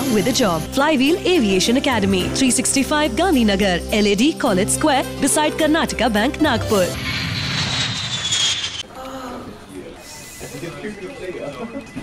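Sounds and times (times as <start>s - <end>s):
jet airliner flyby: 6.3s - 8.9s.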